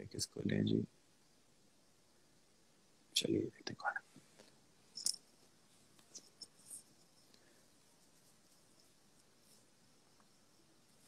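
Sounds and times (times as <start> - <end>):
soft ticks and rustles: 3.6 - 11.0.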